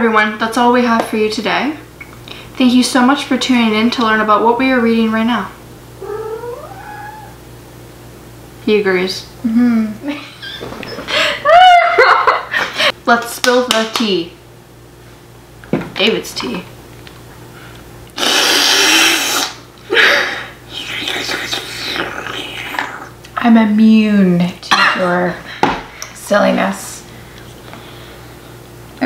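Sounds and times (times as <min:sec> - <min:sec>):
cat meowing: 0:06.0 - 0:07.4
slurping through a straw: 0:18.2 - 0:19.6.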